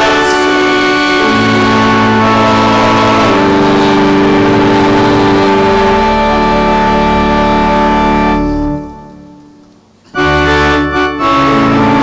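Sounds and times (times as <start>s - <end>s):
church organ chord: 0.0s - 12.0s.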